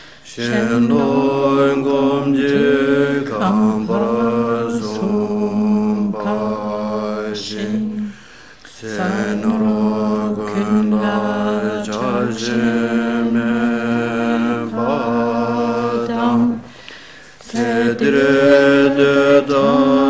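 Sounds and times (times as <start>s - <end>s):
voices chanting prayer: 0.2s - 20.0s.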